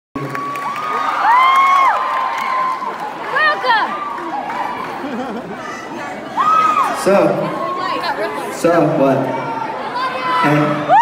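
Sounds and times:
crowd cheering: 0:00.2 - 0:11.0.

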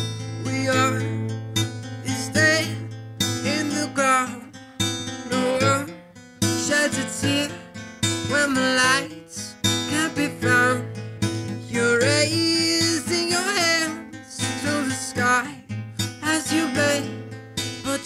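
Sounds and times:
acoustic guitar strumming: 0:00.0 - 0:18.0
man singing: 0:00.0 - 0:18.0.

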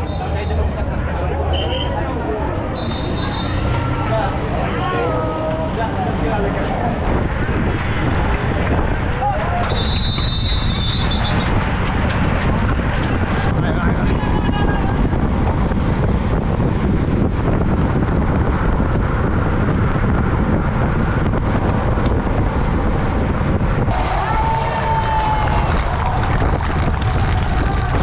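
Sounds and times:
faint voices: 0:00.0 - 0:07.1
wind and road rumble: 0:00.0 - 0:28.0
whistle-like glide: 0:02.7 - 0:03.7, 0:09.7 - 0:11.5.

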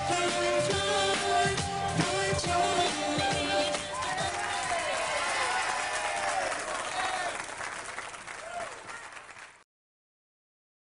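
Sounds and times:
audience applauding and cheering: 0:03.2 - 0:09.6.

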